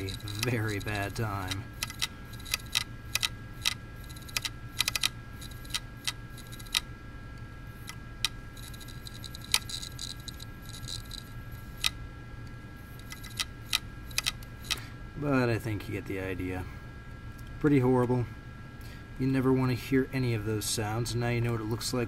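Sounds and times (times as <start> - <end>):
hard drive clicking: 0.0 - 14.9
hard drive high whine: 0.0 - 22.0.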